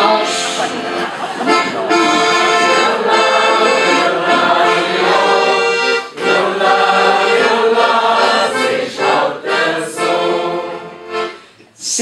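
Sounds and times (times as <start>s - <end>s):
piano accordion playing a tune: 0.0s - 11.6s.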